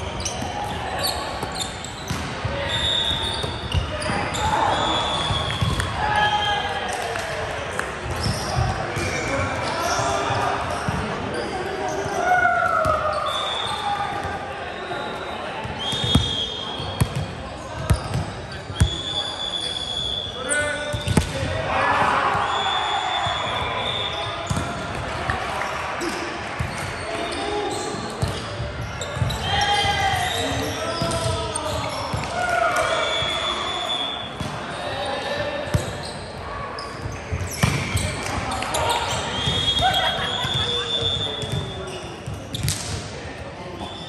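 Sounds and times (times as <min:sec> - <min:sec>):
sneakers squeaking on hardwood: 0:00.1 - 0:05.8, 0:15.8 - 0:19.1, 0:26.6 - 0:32.3, 0:35.7 - 0:42.9
volleyball hits and bounces: 0:01.4 - 0:02.5, 0:05.3 - 0:06.0, 0:20.9 - 0:22.2, 0:24.5 - 0:25.4, 0:37.4 - 0:38.6
players shouting: 0:02.5 - 0:07.5, 0:20.5 - 0:25.8, 0:28.9 - 0:35.4.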